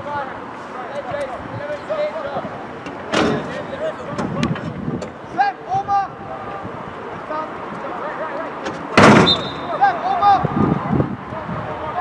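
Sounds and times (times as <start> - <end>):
players calling and shouting: 0.0 - 12.0.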